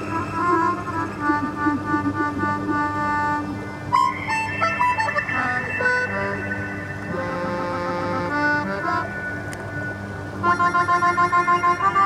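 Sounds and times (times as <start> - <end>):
keyboard harmonica melody: 0.0 - 12.0
electronic synthesizer music: 3.8 - 12.0.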